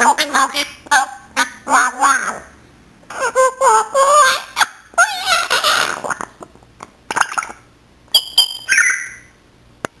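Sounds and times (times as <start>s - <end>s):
parrot whistled chirps: 8.2s - 9.3s
parrot call: 8.2s - 9.4s.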